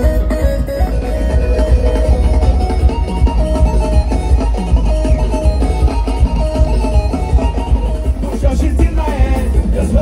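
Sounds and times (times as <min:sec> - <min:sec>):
loud live music through pa: 0:00.0 - 0:10.0.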